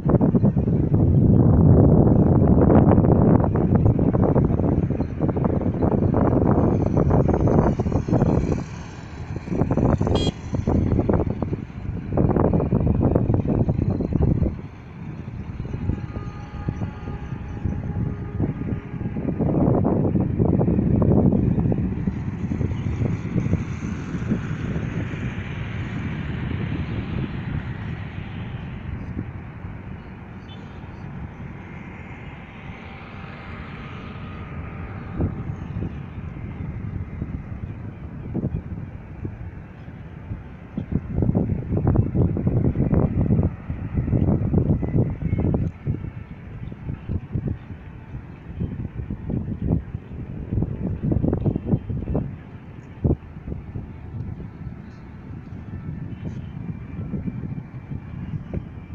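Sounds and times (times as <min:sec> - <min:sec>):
passing engines: 0:00.0 - 0:58.9
traffic noise: 0:00.0 - 0:58.9
wind buffeting microphone: 0:00.0 - 0:58.9.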